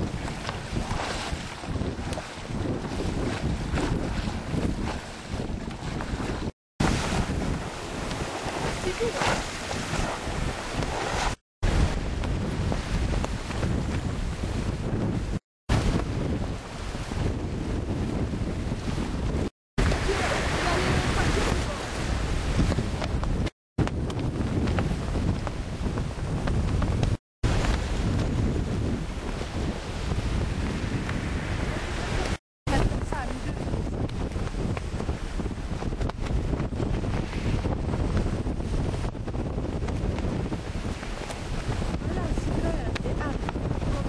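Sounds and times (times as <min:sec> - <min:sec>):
waves washing and splashing: 0:00.0 - 0:44.0
wind buffeting microphone: 0:00.0 - 0:44.0.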